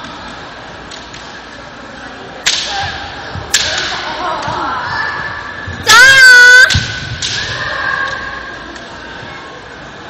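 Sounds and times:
bamboo swords striking: 2.4s - 2.9s, 3.5s - 4.0s.

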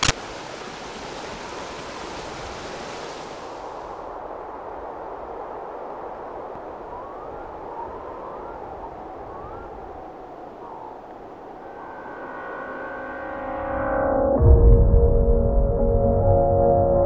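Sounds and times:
faint rising chirps: 10.7s - 14.2s
sustained musical tones: 11.6s - 17.0s.

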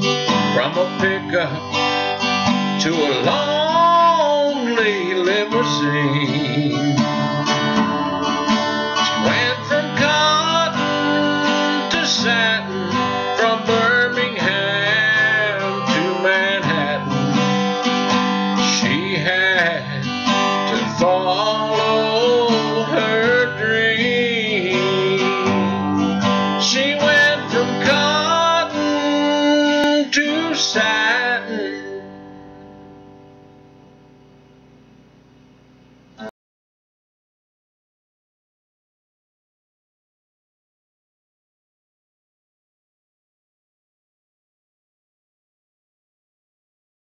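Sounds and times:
acoustic guitar strumming: 0.0s - 35.2s.

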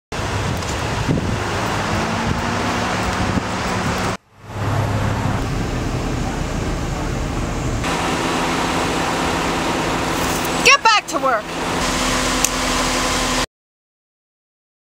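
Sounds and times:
wind on microphone: 0.2s - 4.2s.

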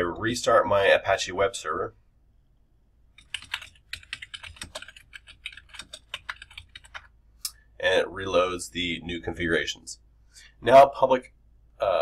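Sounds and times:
computer keyboard key clicks: 3.2s - 7.1s.

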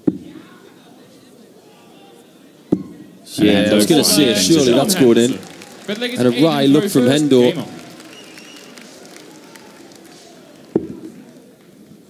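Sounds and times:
crowd murmur: 0.4s - 12.0s.

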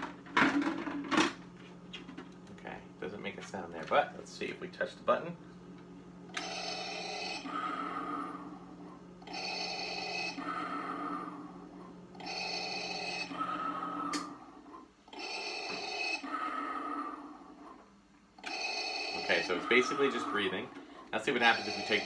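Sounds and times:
mechanical respirator breathing: 6.4s - 22.0s.

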